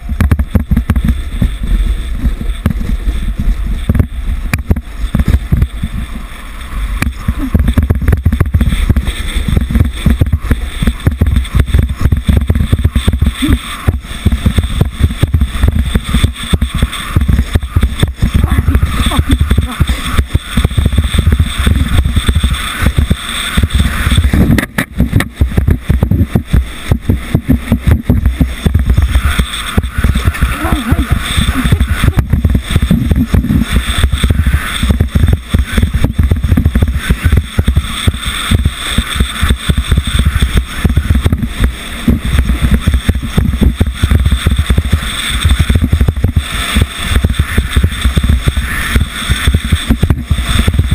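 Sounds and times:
sled knocking and rattling: 0.0 - 6.3, 7.0 - 50.9
heavy low rumble: 0.0 - 50.9
sled runners hissing on ice: 0.0 - 50.9.

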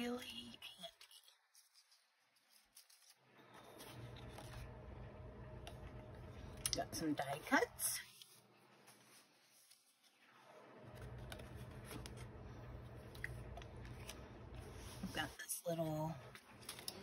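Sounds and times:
paper rustling and sliding: 1.5 - 4.8, 8.0 - 15.3.

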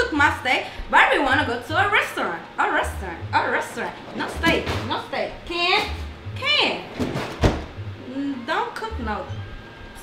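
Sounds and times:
refrigerator door shutting: 6.9 - 7.8.

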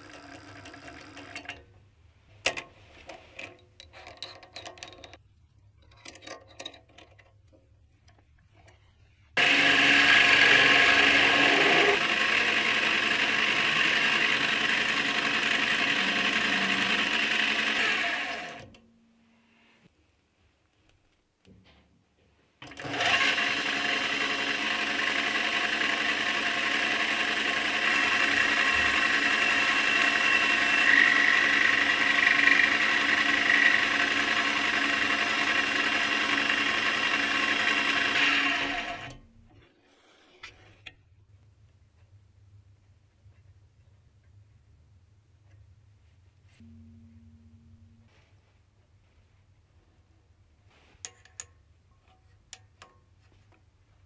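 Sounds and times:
metal lathe drilling steel rod: 9.4 - 18.7, 22.6 - 39.2
high cutting whine: 24.8 - 39.1.

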